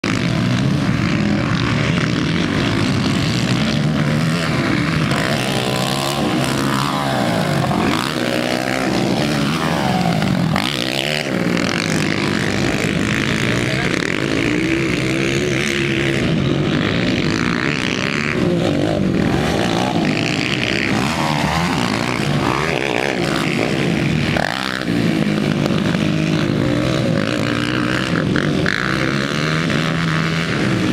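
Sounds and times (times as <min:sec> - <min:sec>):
quad bike engines revving: 0:00.0 - 0:30.9.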